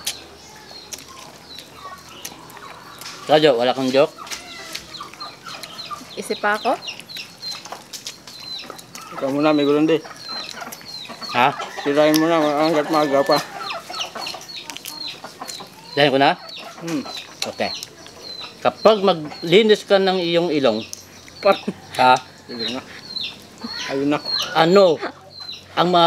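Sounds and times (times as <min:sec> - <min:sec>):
chickens clucking and calling: 0:00.0 - 0:26.0.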